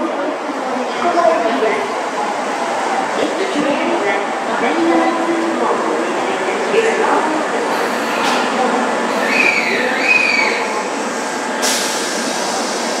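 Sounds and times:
air hiss: 11.0s - 13.0s.

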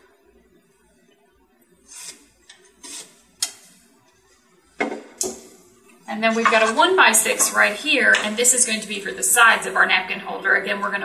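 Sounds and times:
wooden knocks on workbench: 4.8s - 5.4s.

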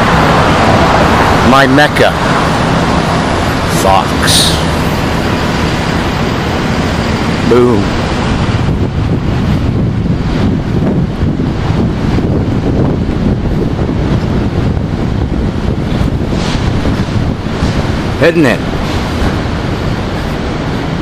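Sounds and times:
street traffic: 0.0s - 21.0s
wind rumbling on microphone: 0.0s - 21.0s.

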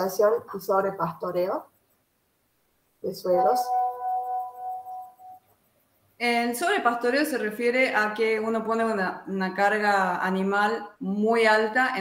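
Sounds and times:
bell-like ringing tone: 3.3s - 5.4s.

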